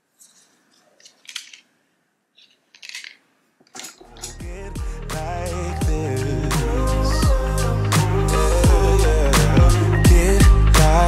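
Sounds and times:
faint scratchy rustles: 0:00.0 - 0:01.6.

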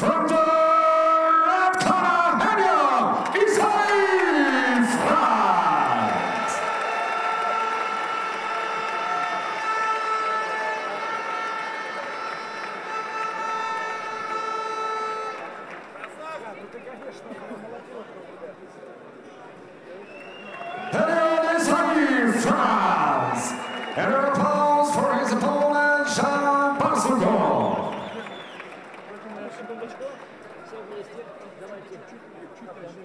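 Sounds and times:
announcer's amplified voice: 0:00.0 - 0:06.6, 0:20.8 - 0:28.2
crowd: 0:00.0 - 0:33.0.

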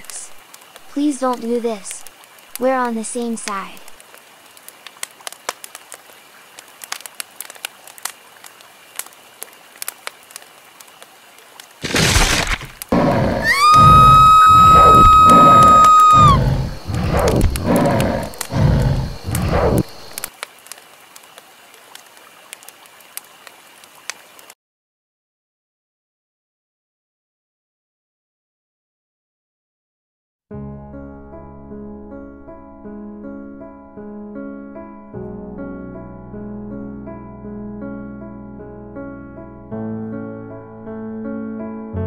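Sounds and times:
faint crackle: 0:00.0 - 0:24.6
heavy low pulses: 0:12.8 - 0:20.3
high steady shriek: 0:13.3 - 0:18.5.

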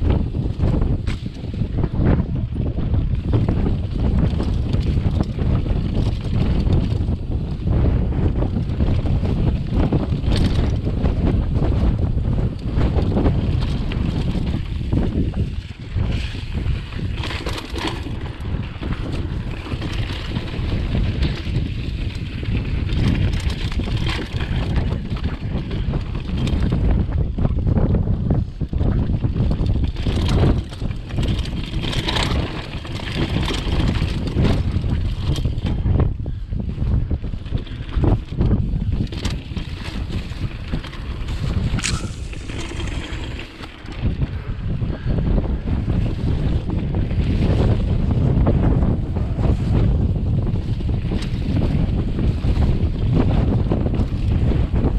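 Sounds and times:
bike knocks and rattles: 0:00.0 - 0:54.9
bike tyre noise on dirt: 0:00.0 - 0:54.9
wind buffeting microphone: 0:00.0 - 0:54.9.

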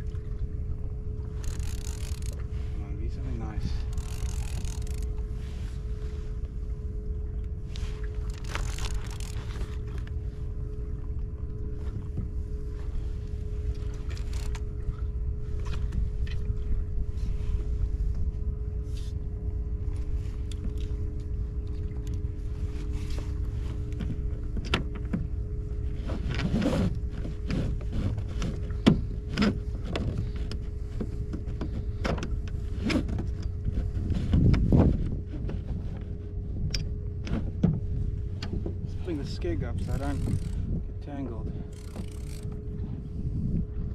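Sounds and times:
faint steady hum: 0:00.0 - 0:43.9
wind and water rumble: 0:00.0 - 0:43.9
fishing reel clicks and knocks: 0:01.4 - 0:02.4, 0:03.8 - 0:05.2, 0:39.8 - 0:40.6, 0:41.7 - 0:42.6.

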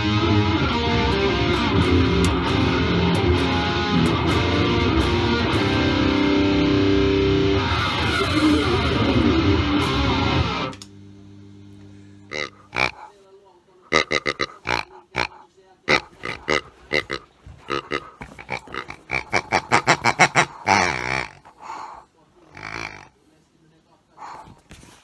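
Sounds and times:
rubber squeeze toy squeaking: 0:13.9 - 0:21.6.

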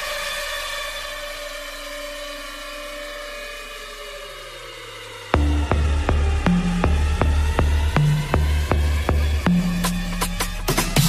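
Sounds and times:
sustained synth pad chords: 0:00.0 - 0:11.0
low bass note: 0:05.4 - 0:10.2.

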